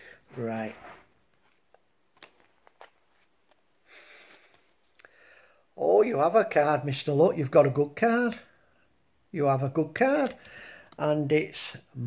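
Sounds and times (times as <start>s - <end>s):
card rustling: 0.3s - 3.7s.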